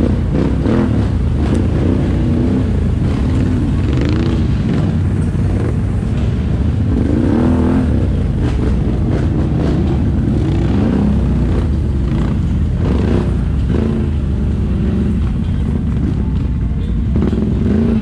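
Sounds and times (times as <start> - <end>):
atv engine running: 0.0 - 18.0.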